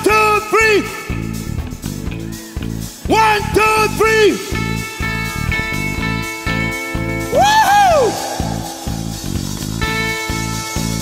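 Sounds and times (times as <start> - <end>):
bass guitar: 0.0 - 11.0
drums with steady beat: 0.9 - 11.0
electric guitar: 4.4 - 11.0
sustained held note: 7.2 - 10.2.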